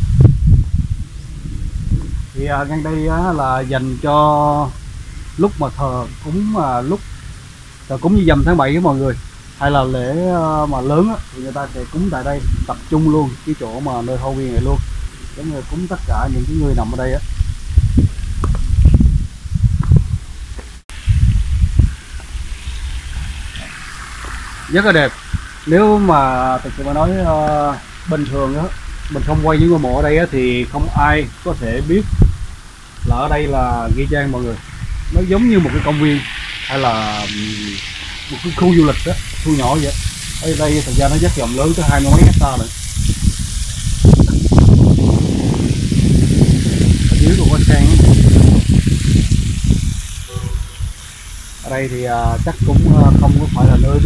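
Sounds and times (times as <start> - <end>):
wind rumble on microphone: 0.0 - 54.0
fountain spraying into pond: 2.2 - 18.5, 20.9 - 54.0.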